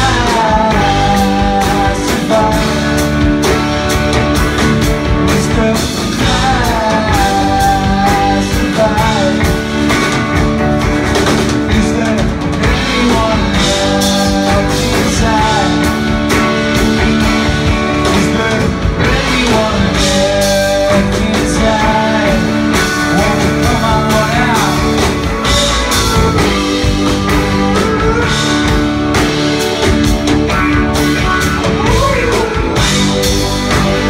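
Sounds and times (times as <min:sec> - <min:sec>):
live rock band playing: 0:00.0 - 0:34.0.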